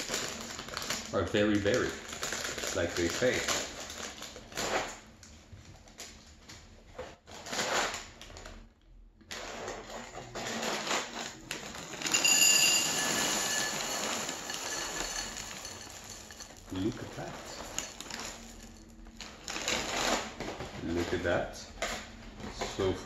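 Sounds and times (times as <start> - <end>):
plastic bag crinkling: 0.0 - 5.2, 9.4 - 21.0
cereal pouring into glass bowl: 11.6 - 19.6.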